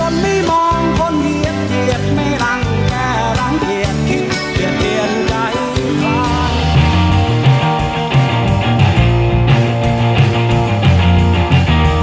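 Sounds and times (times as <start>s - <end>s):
rock music: 0.0s - 12.0s.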